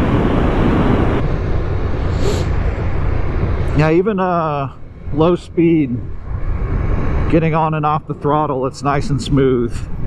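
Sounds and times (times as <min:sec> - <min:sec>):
motorcycle engine and road rumble: 0:00.0 - 0:10.0
wind rush over microphone: 0:00.0 - 0:10.0.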